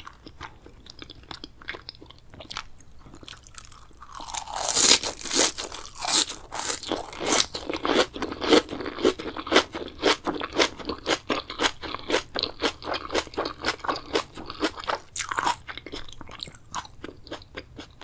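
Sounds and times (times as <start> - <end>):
crunchy chewing of raw vegetables: 0.0 - 18.0.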